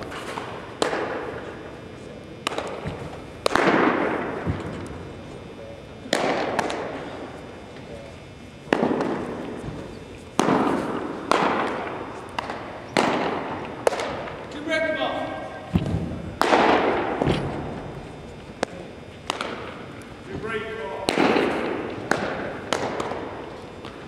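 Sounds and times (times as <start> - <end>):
baseballs smacking into mitts: 0.0 - 1.4, 2.4 - 4.9, 6.0 - 6.9, 8.7 - 14.4, 15.7 - 17.8, 18.6 - 20.4, 21.0 - 24.0.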